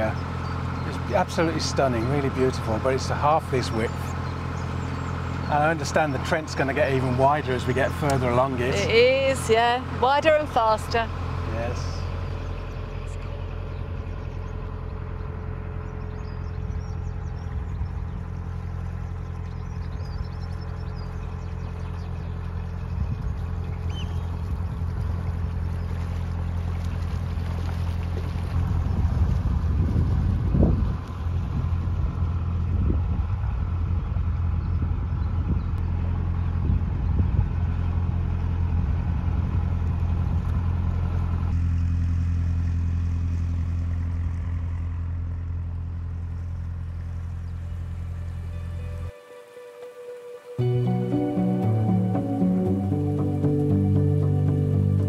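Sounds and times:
loud uneven rumble: 0:00.0 - 0:49.2
diesel boat engine humming: 0:00.0 - 0:55.0.

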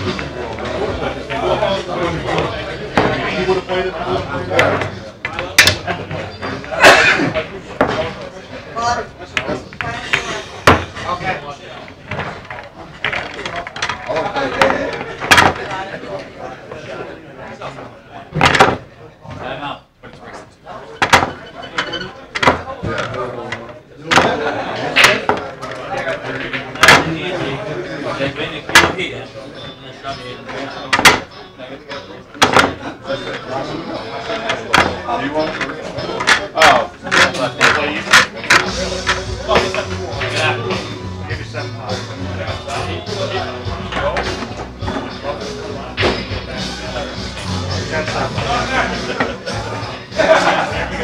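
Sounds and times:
background room chatter: 0:00.0 - 0:51.0
pool balls clacking together: 0:02.2 - 0:08.3, 0:09.2 - 0:16.8, 0:18.3 - 0:19.4, 0:20.9 - 0:27.6, 0:28.6 - 0:40.8, 0:42.5 - 0:46.7.

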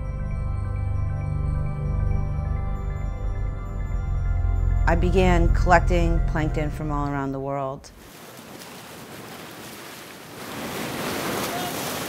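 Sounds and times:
wind: 0:07.9 - 0:12.0
waves rushing: 0:08.0 - 0:12.0.

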